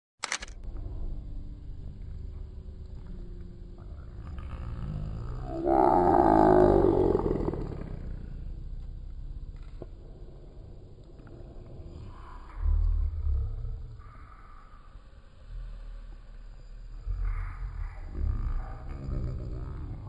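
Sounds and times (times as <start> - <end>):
low rumble: 0.5 - 20.0
animal roaring cry: 4.1 - 8.6, 17.1 - 20.0.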